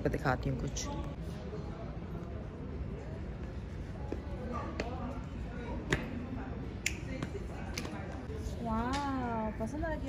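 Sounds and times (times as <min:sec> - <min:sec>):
faint distant voices: 0:00.8 - 0:10.0.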